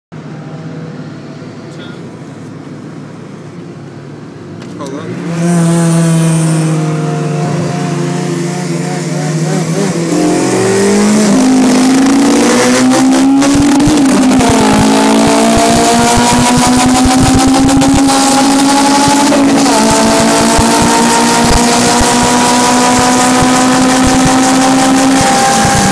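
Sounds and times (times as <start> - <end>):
road noise: 0.1 - 25.9
in-cabin engine drone: 0.2 - 25.9.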